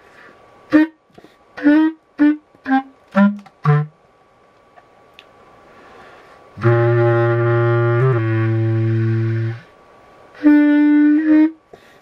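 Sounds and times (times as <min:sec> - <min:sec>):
low single-reed wind instrument: 0:00.7 - 0:01.0, 0:01.6 - 0:04.0, 0:06.6 - 0:11.8.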